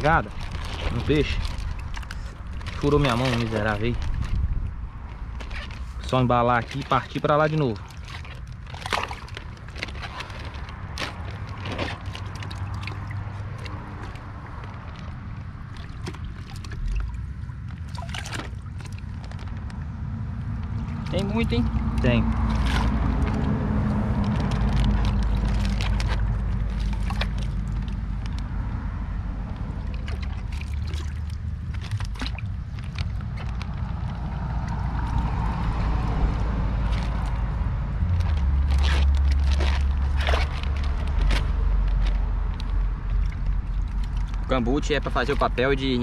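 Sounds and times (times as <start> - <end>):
plastic bag crinkling: 0.0 - 16.9, 17.9 - 19.7, 20.6 - 28.6, 38.0 - 45.6
water sloshing in plastic bag: 0.0 - 46.0
wind rumble on microphone: 0.0 - 46.0.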